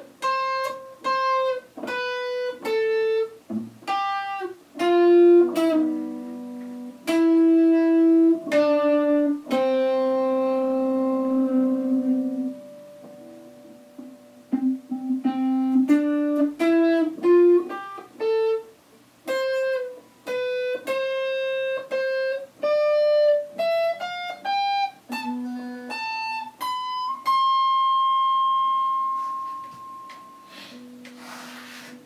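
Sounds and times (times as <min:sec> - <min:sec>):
electric guitar picked notes: 0:00.0 - 0:32.0.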